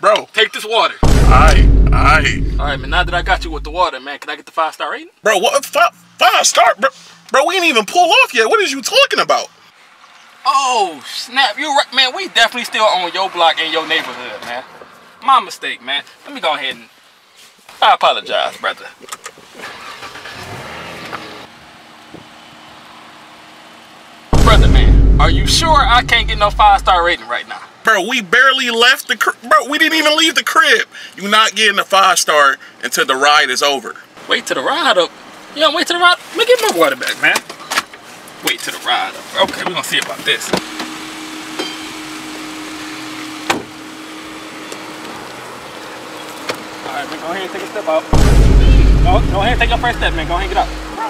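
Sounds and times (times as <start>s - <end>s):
car door slamming: 1.0s - 3.8s, 24.4s - 27.0s, 48.1s - 50.9s
car engine starting and idling: 1.0s - 3.8s, 19.5s - 27.2s, 44.6s - 51.0s
steady hum: 1.0s - 3.8s, 24.3s - 27.1s, 48.1s - 51.0s.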